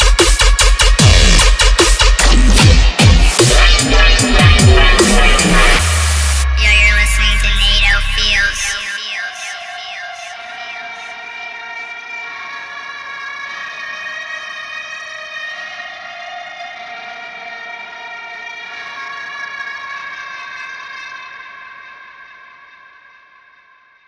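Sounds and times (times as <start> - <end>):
electronic synth chords: 0.0 - 10.7.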